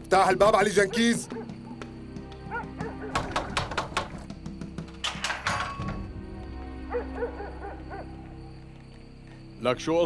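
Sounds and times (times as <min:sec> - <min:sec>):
soft background music: 0:00.0 - 0:10.0
animal barks: 0:00.8 - 0:01.8, 0:02.4 - 0:03.6, 0:06.8 - 0:08.2.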